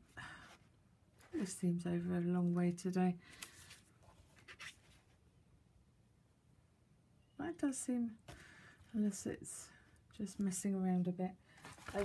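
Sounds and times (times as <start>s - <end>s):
person speaking: 1.2s - 3.2s, 8.9s - 12.0s
cardstock rustling and scraping: 11.6s - 12.0s.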